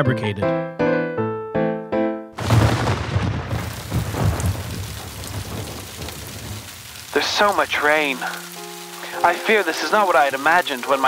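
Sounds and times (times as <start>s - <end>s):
thunder rumbling: 2.4s - 10.6s
heavy rain hissing: 2.4s - 11.0s.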